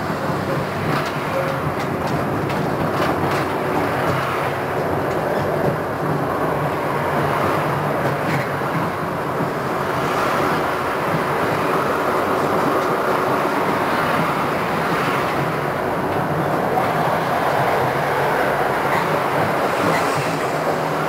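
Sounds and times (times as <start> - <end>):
tram wheels rumbling on rails: 0.0 - 21.0.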